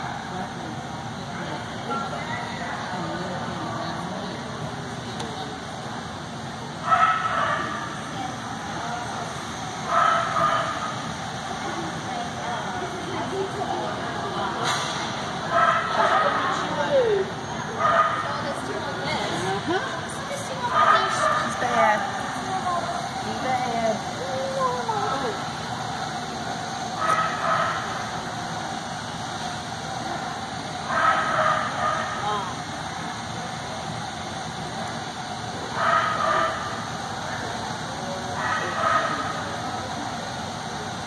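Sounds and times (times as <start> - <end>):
voices calling: 0.0 - 41.0
dog barking: 6.9 - 7.8, 9.9 - 10.8, 15.5 - 16.4, 17.8 - 18.2, 27.0 - 27.9, 30.9 - 32.2, 35.8 - 36.6, 38.4 - 39.3.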